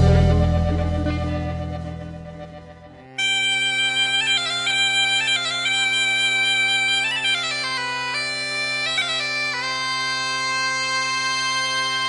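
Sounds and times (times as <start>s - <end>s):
bagpipe melody over drone: 0.0s - 12.0s.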